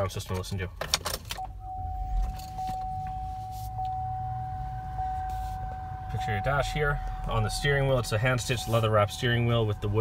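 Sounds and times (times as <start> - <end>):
ignition clicks: 0.0 - 9.7
car engine cranking and idling: 0.0 - 10.0
steady high tone: 1.5 - 10.0.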